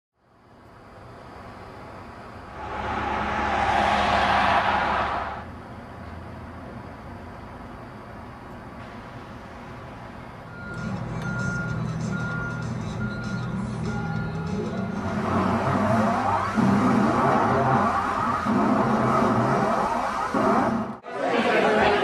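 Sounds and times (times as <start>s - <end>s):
reversing alarm beeping: 10.4s - 20.8s
mix of voices: 21.1s - 22.0s.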